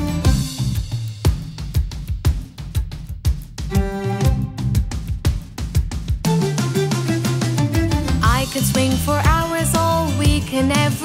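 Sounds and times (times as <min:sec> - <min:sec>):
drums and bass beat: 0:00.0 - 0:11.0
upbeat children's song: 0:00.0 - 0:11.0.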